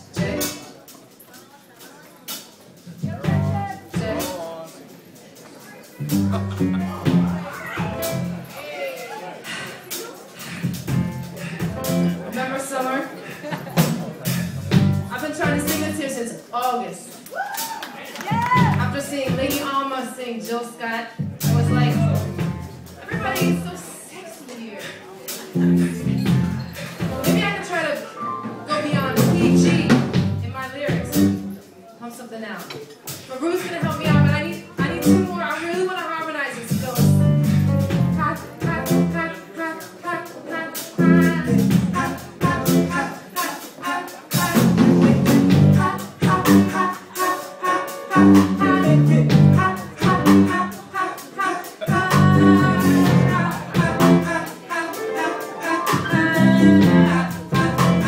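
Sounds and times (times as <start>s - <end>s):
live band accented hits: 0.0s - 1.2s, 2.3s - 24.0s, 24.8s - 31.8s, 32.6s - 58.0s
held bass note: 6.0s - 8.5s, 25.6s - 27.6s
woman singing into microphone: 38.1s - 58.0s.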